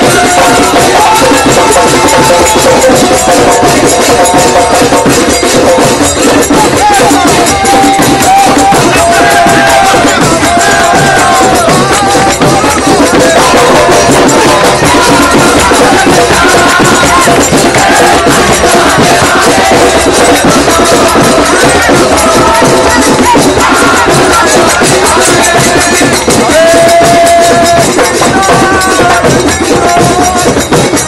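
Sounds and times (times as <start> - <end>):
drums and hand cymbals: 0.0 - 31.0
group singing devotional chant: 0.0 - 31.0.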